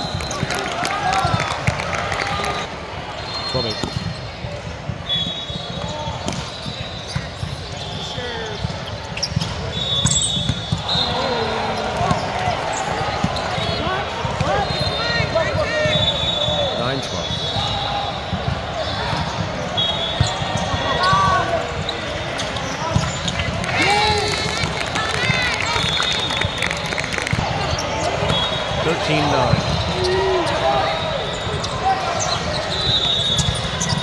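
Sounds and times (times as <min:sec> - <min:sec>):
sneakers squeaking on court: 0:03.2 - 0:15.0, 0:18.4 - 0:23.6, 0:27.3 - 0:34.0
voices and shouts: 0:22.9 - 0:32.9.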